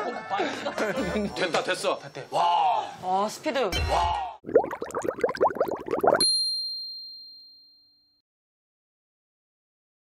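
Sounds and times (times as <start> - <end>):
short rising bloops: 4.4 - 6.2
bright bell-like ding: 6.2 - 8.2.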